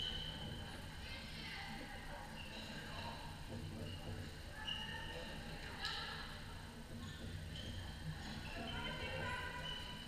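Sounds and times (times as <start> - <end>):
shoes squeaking on court floor: 0.0 - 0.8, 6.9 - 10.0.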